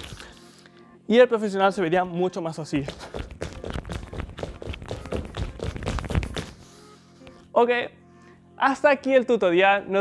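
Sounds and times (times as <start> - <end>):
sneakers tapping on wooden floor: 2.8 - 6.6.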